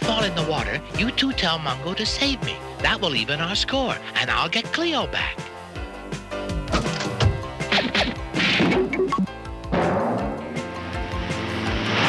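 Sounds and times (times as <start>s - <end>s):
background music: 0.0s - 12.0s
cartoon whacks and knocks: 7.7s - 9.0s.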